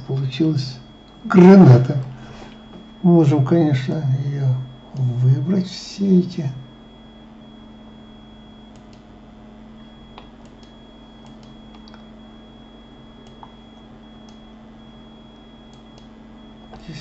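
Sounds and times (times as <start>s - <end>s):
steady low hum: 0.0s - 17.0s
thin high whine: 0.0s - 17.0s
faint computer mouse clicks: 13.2s - 13.6s.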